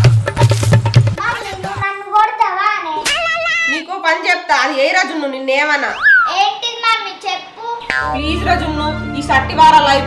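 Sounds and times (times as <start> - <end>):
young girl speaking: 1.2 - 3.9, 6.2 - 8.1.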